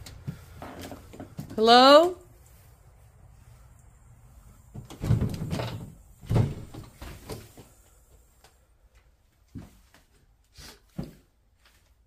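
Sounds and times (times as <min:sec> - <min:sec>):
wooden door bumping and rattling: 0:04.8 - 0:07.0.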